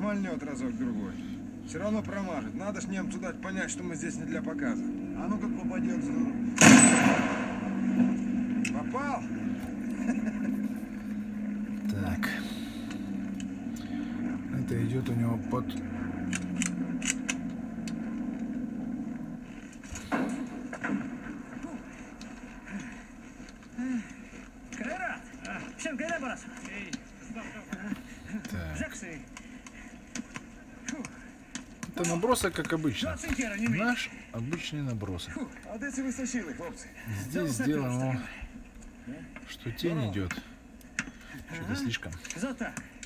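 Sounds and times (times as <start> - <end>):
aircraft engine drone from television: 0.0 - 32.3.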